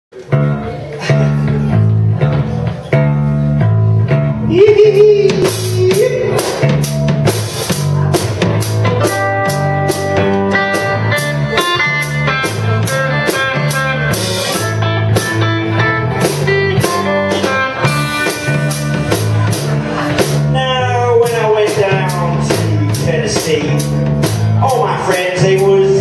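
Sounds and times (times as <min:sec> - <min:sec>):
bass guitar: 0:00.1 - 0:26.0
electric guitar: 0:00.1 - 0:26.0
drum kit steady beat: 0:00.2 - 0:26.0.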